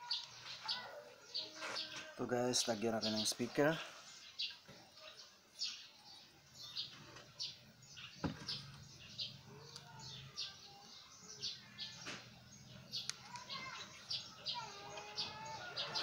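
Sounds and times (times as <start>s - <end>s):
small bird chirping: 0.0s - 16.0s.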